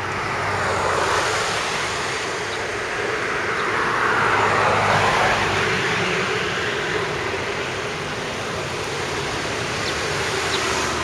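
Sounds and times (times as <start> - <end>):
vehicle passing by: 0.0 - 11.0.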